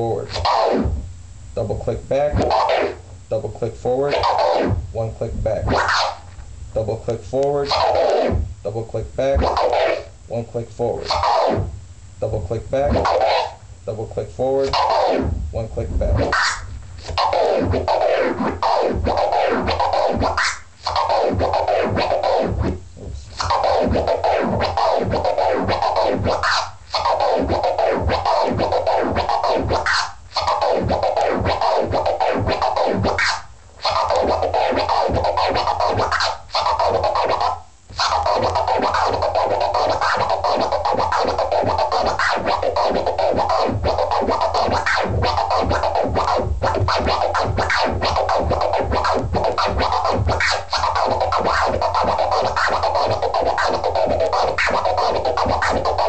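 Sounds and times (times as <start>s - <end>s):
turntable scratching: 0.0s - 56.0s.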